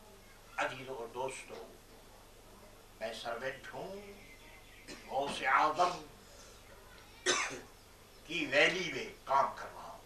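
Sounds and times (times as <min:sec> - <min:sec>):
short cough: 0:07.2 - 0:07.7.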